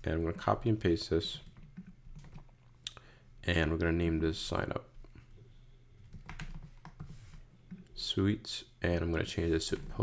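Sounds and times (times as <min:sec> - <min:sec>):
computer keyboard typing: 0:01.4 - 0:02.5, 0:06.0 - 0:07.8.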